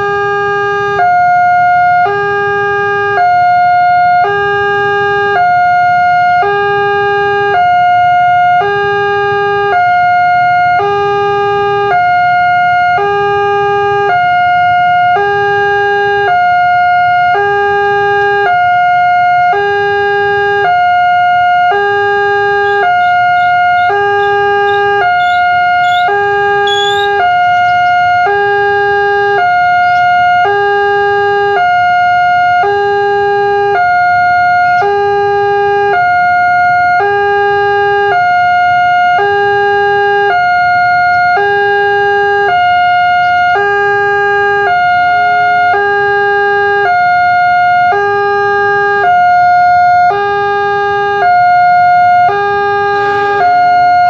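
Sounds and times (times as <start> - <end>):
two-tone level crossing alarm: 0.0 - 54.0
brief high chirps: 26.7 - 27.1.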